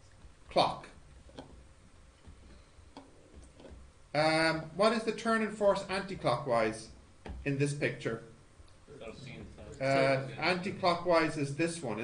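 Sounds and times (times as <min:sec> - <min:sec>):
low background hum: 0:00.0 - 0:12.0
stylus tapping on tablet screen: 0:01.2 - 0:03.9.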